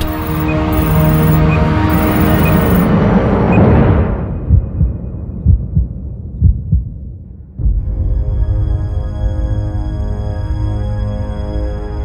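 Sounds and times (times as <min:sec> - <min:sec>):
film score music: 0:00.0 - 0:12.0
sudden low hit: 0:03.6 - 0:08.8
heartbeat: 0:04.4 - 0:07.7.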